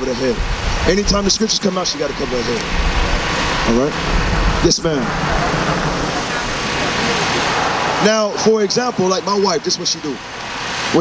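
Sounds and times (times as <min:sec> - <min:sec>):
cars passing on street: 0:00.0 - 0:11.0.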